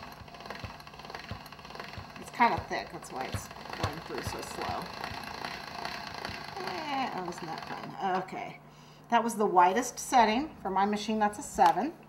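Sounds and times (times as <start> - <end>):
hand-cranked pasta machine turning: 0.0 - 8.4.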